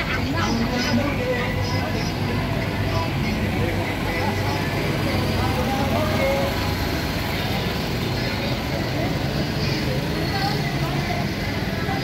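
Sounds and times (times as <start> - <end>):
street crowd chatter: 0.0 - 12.0
vehicle engine running: 0.0 - 12.0.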